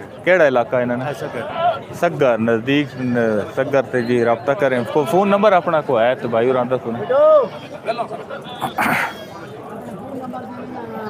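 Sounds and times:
men chattering: 4.8s - 10.3s.

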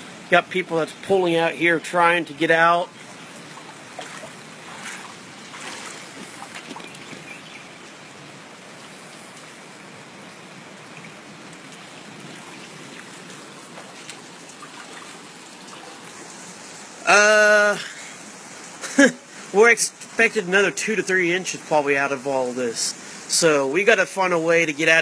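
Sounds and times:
heavy rain: 0.0s - 25.0s
running floodwater: 0.0s - 25.0s.

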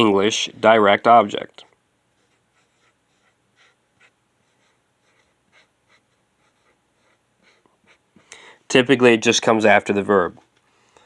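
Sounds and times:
marker scratching on whiteboard: 2.2s - 8.3s.

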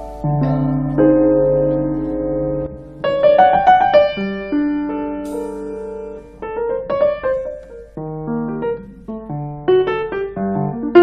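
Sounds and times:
grand piano playing: 0.0s - 11.0s.

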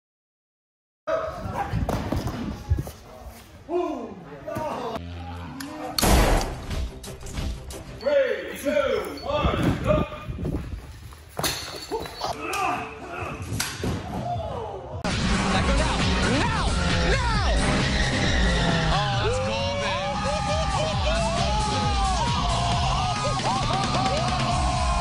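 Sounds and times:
people exclaiming: 15.7s - 25.0s.

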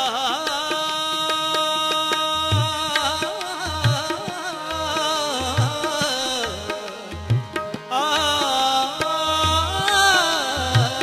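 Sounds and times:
harmonium held notes: 0.3s - 11.0s.

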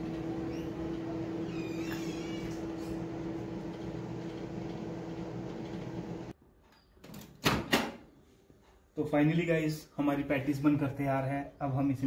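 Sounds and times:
microwave oven humming: 0.0s - 6.4s.

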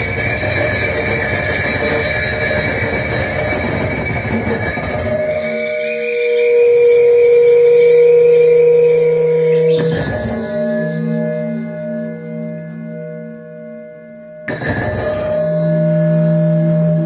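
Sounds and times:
grinding electronic noise music: 0.0s - 17.0s
high held tones: 0.0s - 17.0s
low drone: 0.0s - 17.0s.

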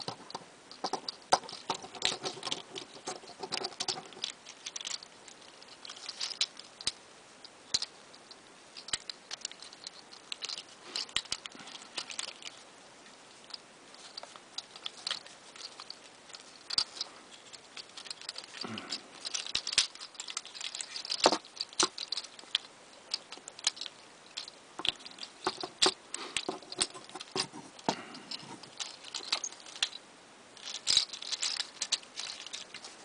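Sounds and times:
plastic toy joints clicking: 0.0s - 7.0s, 8.8s - 12.6s, 13.4s - 30.0s, 30.6s - 33.0s.

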